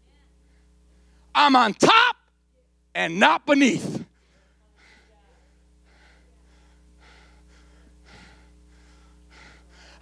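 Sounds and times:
steady low hum: 0:00.0 - 0:10.0
man breathing hard into microphone: 0:04.1 - 0:10.0.

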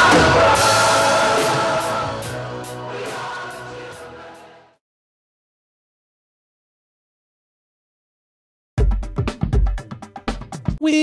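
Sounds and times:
drum kit hits: 0:00.0 - 0:02.8.

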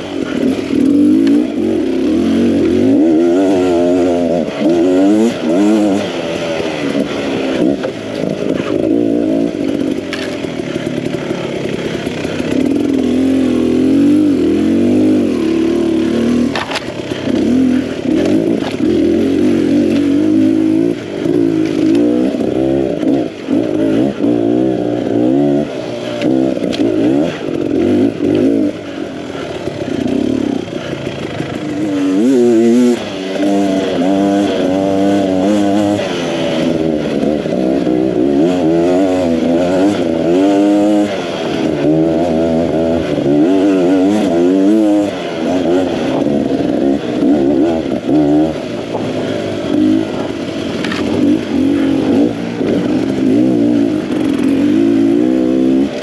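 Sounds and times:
dirt bike engine revving: 0:00.0 - 0:56.0.

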